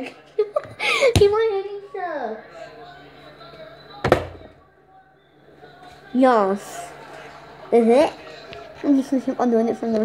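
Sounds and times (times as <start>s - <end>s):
plastic bottle thud on counter: 4.0s - 4.4s.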